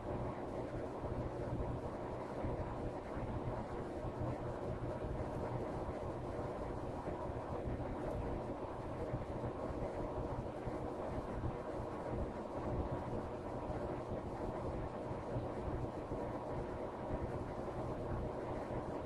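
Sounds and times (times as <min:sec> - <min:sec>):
low hum and hiss: 0:00.0 - 0:19.0.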